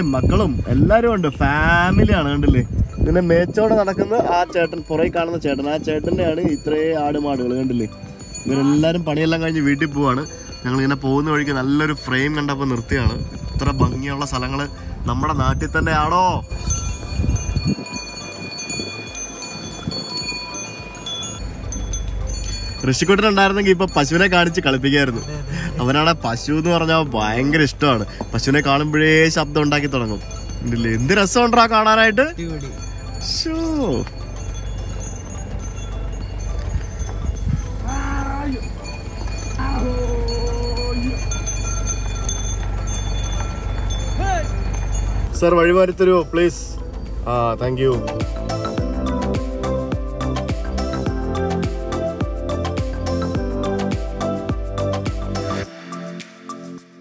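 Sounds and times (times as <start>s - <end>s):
animal bells clinking: 0.0s - 56.8s
steady low rumble: 11.9s - 51.5s.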